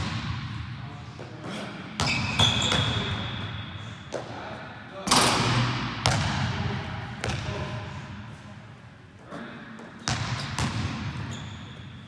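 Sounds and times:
basketball hitting hoop: 5.1s - 6.5s.

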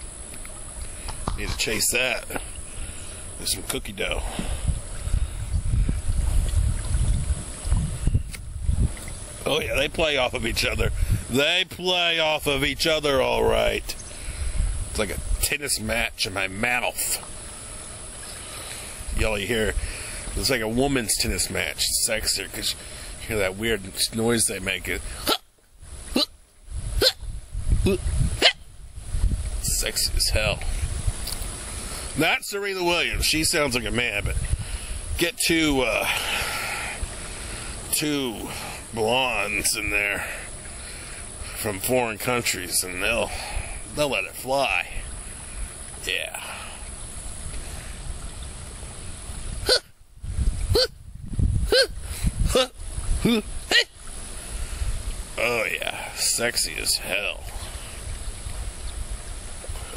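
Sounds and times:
low outdoor rumble: 0.0s - 59.9s
man yelping grunts: 50.7s - 51.0s, 51.6s - 53.9s.

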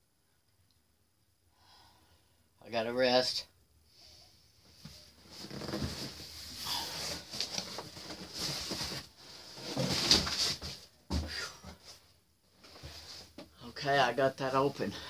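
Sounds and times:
cardboard flaps scraping and rustling: 5.3s - 10.9s.

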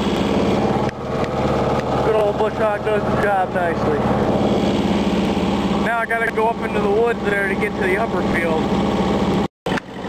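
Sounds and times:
diesel tractor running: 0.0s - 10.0s.

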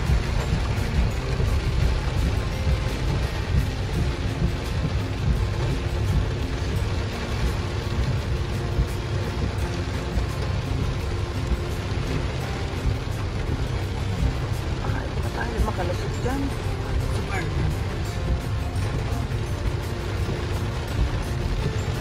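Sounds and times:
car low rumble: 0.0s - 22.0s
heavy rain on car roof: 0.0s - 22.0s.

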